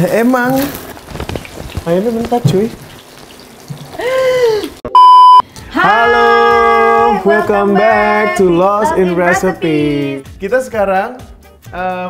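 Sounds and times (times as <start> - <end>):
test-tone beep: 4.9 - 5.4.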